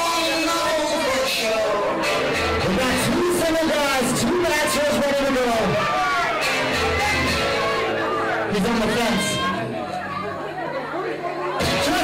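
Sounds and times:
people chattering in a hall: 0.0s - 12.0s.

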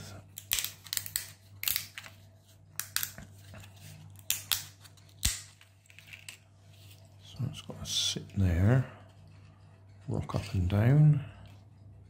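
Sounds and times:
plastic parts clicking and snapping: 0.3s - 2.2s, 2.8s - 3.3s.

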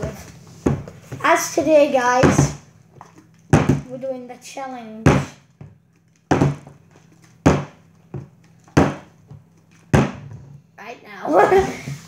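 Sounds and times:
plastic bottle thudding on wooden table: 6.3s - 6.7s, 9.9s - 10.4s.

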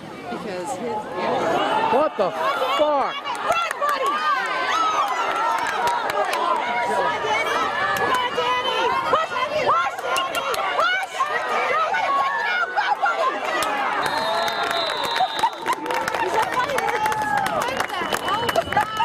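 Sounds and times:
crowd chattering and calling out: 0.0s - 19.0s.

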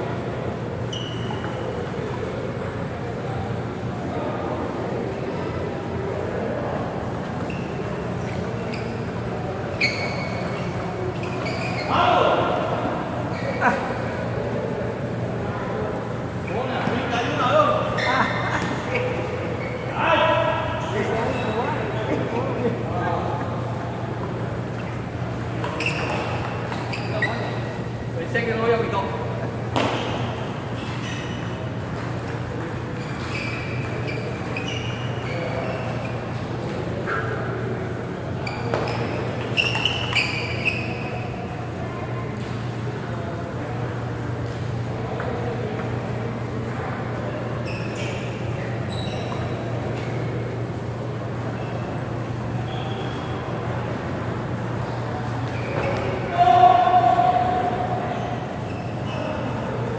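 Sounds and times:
table tennis balls clicking: 6.7s - 11.4s, 24.1s - 27.6s.

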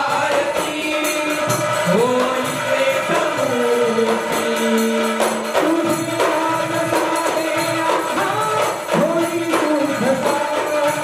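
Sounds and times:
clay-pot drums: 0.0s - 11.0s
hand cymbals jingling: 0.0s - 11.0s
men singing devotional song: 0.0s - 11.0s.

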